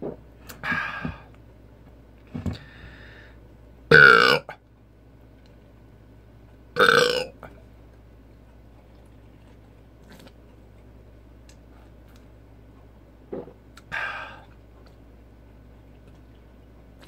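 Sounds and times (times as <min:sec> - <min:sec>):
man burping: 0:03.9 - 0:04.6, 0:06.8 - 0:07.4.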